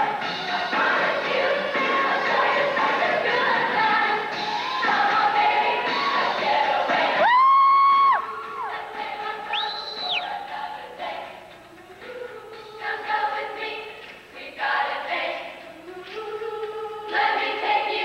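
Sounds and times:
young women singing together: 0.0s - 18.0s.

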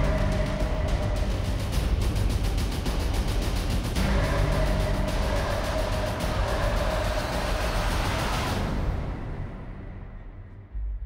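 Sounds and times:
heavy low rumble: 0.0s - 11.0s.

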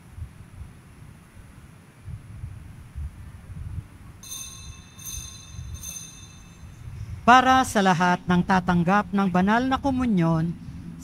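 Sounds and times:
high ringing chime: 4.2s - 7.2s.

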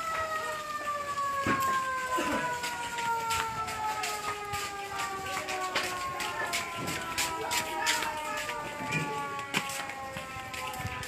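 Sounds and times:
distant siren wailing: 0.0s - 11.0s.

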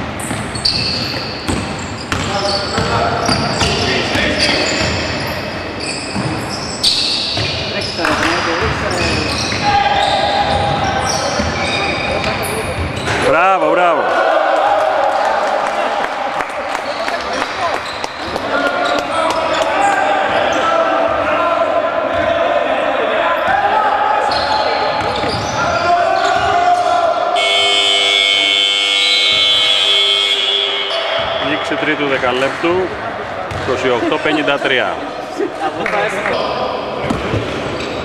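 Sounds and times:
players' voices: 0.6s - 38.0s
scoreboard buzzer blast: 27.4s - 31.2s.

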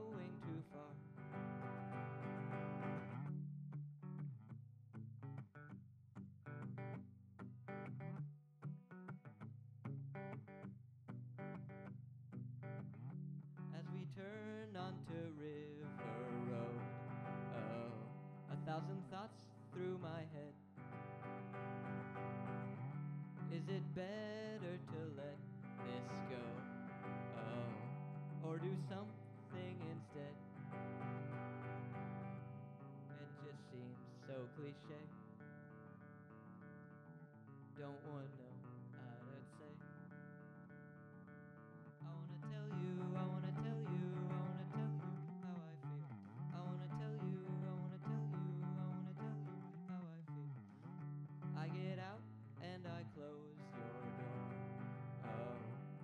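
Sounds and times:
man singing: 0.0s - 1.0s, 13.8s - 20.6s, 23.5s - 30.5s, 33.0s - 35.3s, 37.7s - 40.0s, 42.0s - 50.6s, 51.6s - 56.0s
electric guitar chords: 0.0s - 3.4s, 12.6s - 56.0s.

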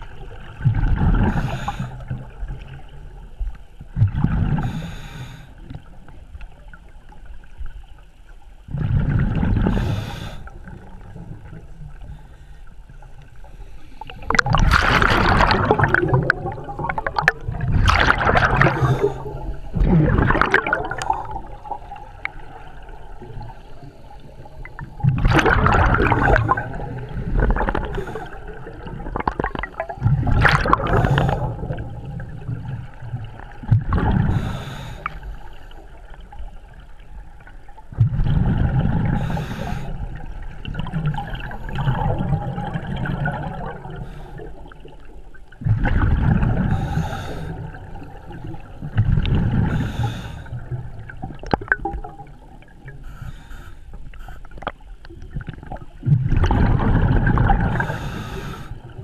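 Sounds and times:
exhaled bubbles gurgling: 0.0s - 7.5s, 8.6s - 59.0s
scuba regulator breathing underwater: 1.1s - 2.2s, 4.5s - 5.6s, 9.5s - 11.0s, 13.4s - 32.0s, 34.0s - 36.0s, 38.7s - 40.2s, 43.2s - 44.8s, 46.4s - 50.8s, 53.0s - 54.7s, 57.4s - 59.0s.

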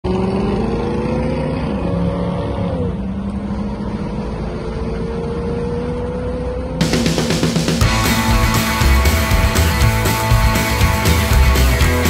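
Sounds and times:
car engine running: 6.8s - 12.0s.

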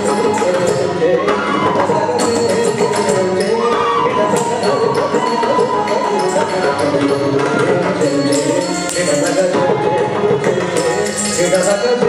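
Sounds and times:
ankle bells: 0.0s - 1.1s, 1.9s - 12.0s
percussion: 0.0s - 12.0s.

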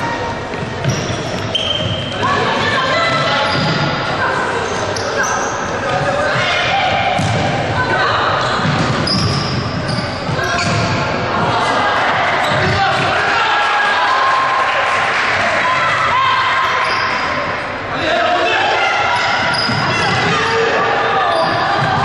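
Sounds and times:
shoes squeaking on wooden floor: 0.4s - 2.4s, 8.6s - 10.8s
ball kick: 7.0s - 7.6s.

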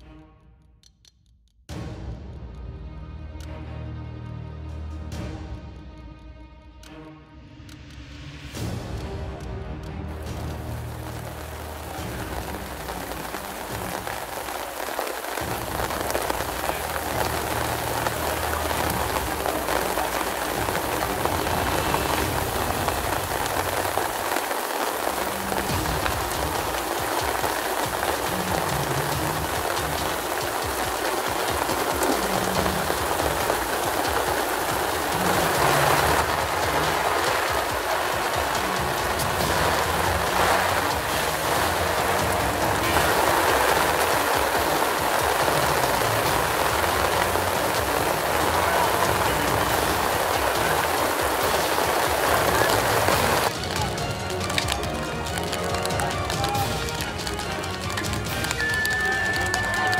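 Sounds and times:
rain on canvas tents: 8.4s - 59.9s.

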